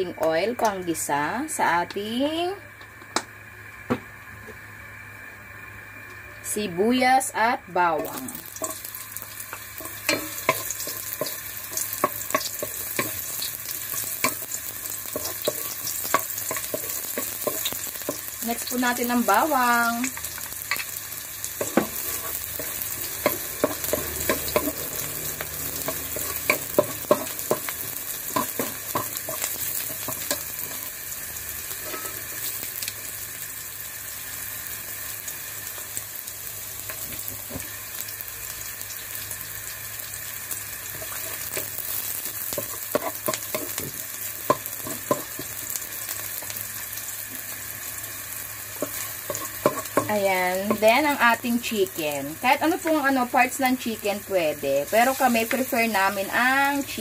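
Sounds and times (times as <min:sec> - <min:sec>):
onion and garlic sizzling in oil: 0:00.0 - 0:57.0
wooden spatula scraping a pan: 0:21.6 - 0:24.8.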